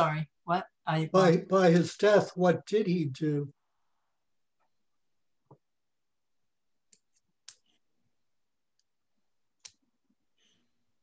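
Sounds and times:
small sharp clicks: 0:09.6 - 0:09.9.

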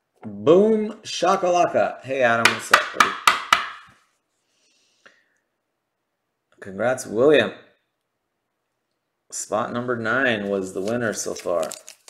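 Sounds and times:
sharp knocks: 0:02.4 - 0:03.9.

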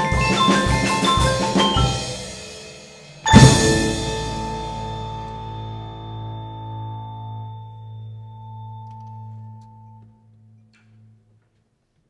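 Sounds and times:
mallet keyboards and bass chord: 0:03.3 - 0:09.9.

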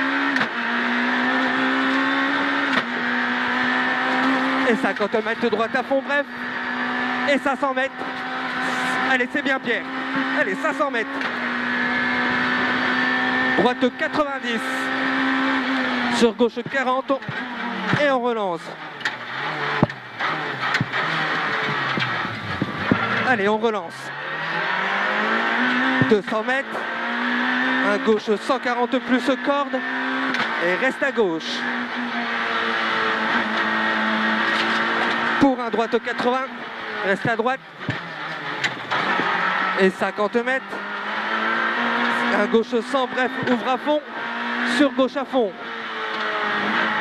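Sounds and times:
rally car engine at high revs: 0:00.0 - 0:47.0.

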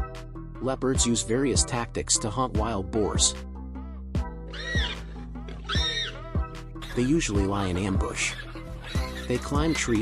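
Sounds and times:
background music with deep beat: 0:00.0 - 0:01.8, 0:02.6 - 0:10.0
animal crying out: 0:04.5 - 0:10.0.

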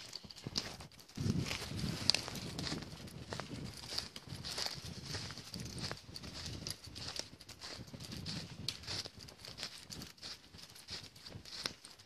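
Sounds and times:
footsteps crunching through dry leaves: 0:00.0 - 0:12.0.

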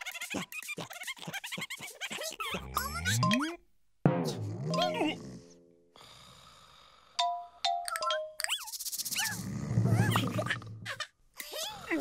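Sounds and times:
cartoon squeaky voice calls: 0:00.0 - 0:03.6, 0:08.4 - 0:09.4
music: 0:04.1 - 0:06.0.

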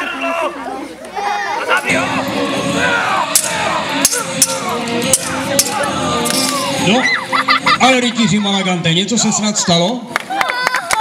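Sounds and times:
people shouting: 0:00.0 - 0:07.7
background music with drone: 0:01.9 - 0:08.4
swords clashing: 0:03.3 - 0:06.8.

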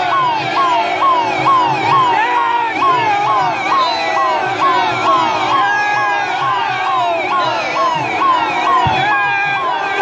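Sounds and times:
electronic vehicle siren: 0:00.0 - 0:10.0
low thump: 0:08.8 - 0:09.1.

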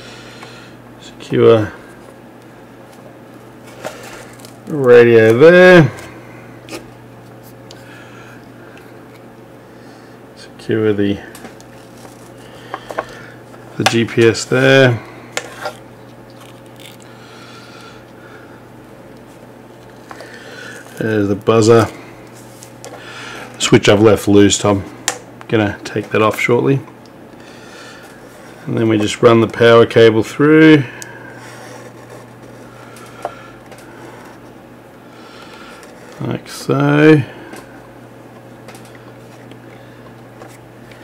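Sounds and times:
steady low hum: 0:00.0 - 0:41.0
rustling and clicks of cable handling: 0:01.2 - 0:09.3, 0:11.3 - 0:14.6, 0:19.1 - 0:23.6, 0:31.8 - 0:34.6, 0:37.5 - 0:41.0
rustle of wires and plastic: 0:11.3 - 0:12.5.

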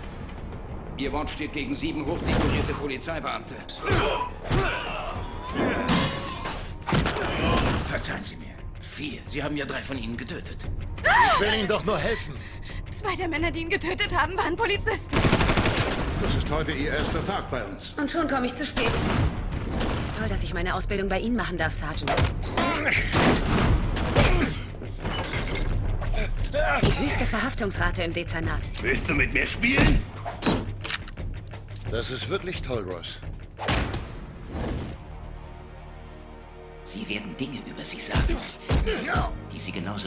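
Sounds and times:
trailer music: 0:00.0 - 0:40.0.

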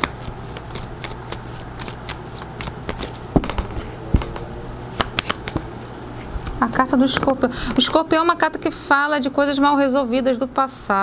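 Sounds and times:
cards being shuffled: 0:00.0 - 0:05.7.

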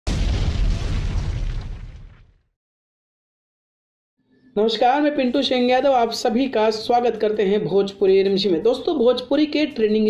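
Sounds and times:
deep explosion boom: 0:00.0 - 0:02.5.

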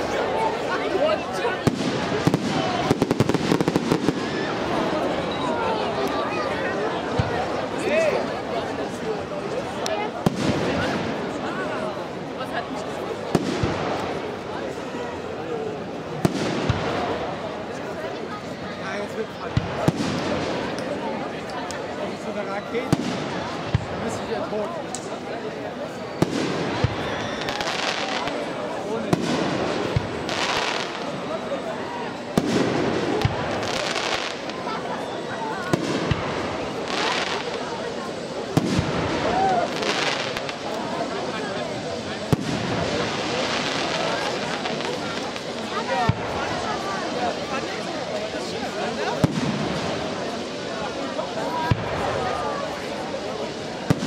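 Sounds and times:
onlookers' voices: 0:00.0 - 0:54.0
firework bangs: 0:01.4 - 0:04.9, 0:10.2 - 0:11.4, 0:13.3 - 0:14.3, 0:16.2 - 0:17.4, 0:19.5 - 0:20.8, 0:22.8 - 0:24.2, 0:26.2 - 0:31.2, 0:32.3 - 0:34.7, 0:35.6 - 0:50.7, 0:51.4 - 0:52.6, 0:53.3 - 0:54.0
firework hissing: 0:35.6 - 0:54.0.

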